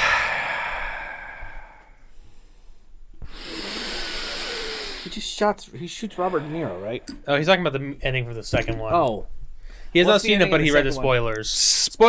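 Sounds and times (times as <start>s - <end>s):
rushing air hiss: 0.0s - 1.9s, 3.3s - 7.3s.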